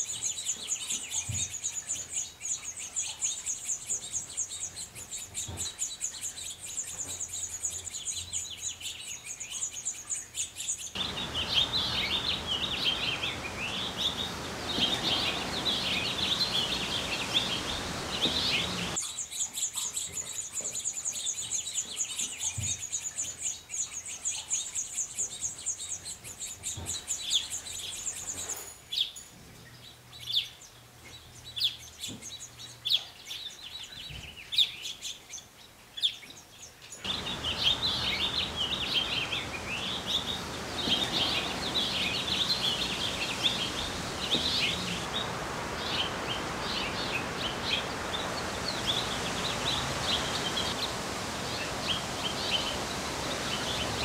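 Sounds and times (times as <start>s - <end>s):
nestlings begging calls: 0.0s - 19.0s, 37.0s - 54.0s
finches twittering: 10.9s - 19.0s, 37.1s - 54.0s.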